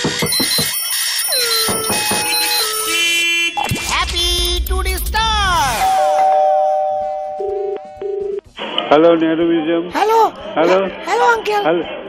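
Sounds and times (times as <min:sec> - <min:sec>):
electronic jingle with beeps: 0:00.2 - 0:04.8, 0:05.4 - 0:08.4.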